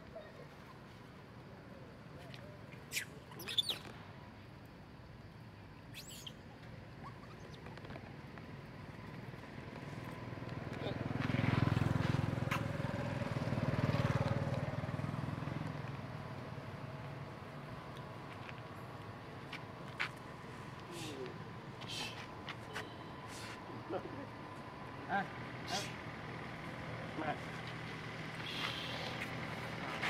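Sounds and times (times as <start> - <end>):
motor vehicle passing: 8.7 - 17.7, 23.3 - 30.0.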